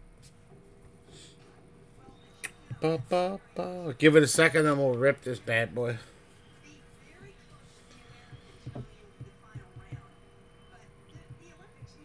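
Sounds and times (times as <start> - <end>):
faint steady hum: 0.0 - 12.0
fingers tapping on wooden desk: 8.1 - 10.1.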